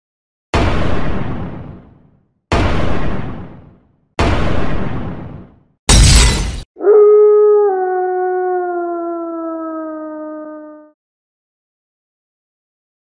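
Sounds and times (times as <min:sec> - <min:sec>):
glass shattering: 0:05.9 - 0:06.7
long howl: 0:06.8 - 0:11.0.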